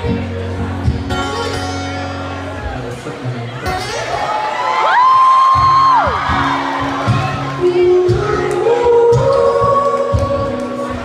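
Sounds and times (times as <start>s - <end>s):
strummed acoustic guitar: 0.0s - 4.2s
person singing: 7.5s - 11.0s.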